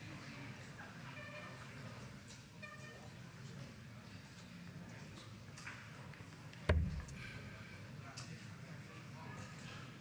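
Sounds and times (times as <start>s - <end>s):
faint hall ambience: 0.0s - 10.0s.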